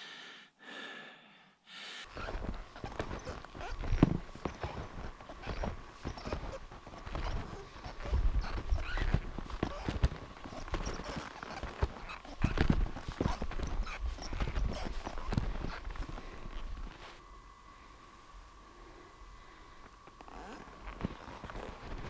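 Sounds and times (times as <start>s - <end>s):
footsteps crunching in snow: 2.1s - 17.2s, 20.1s - 22.0s.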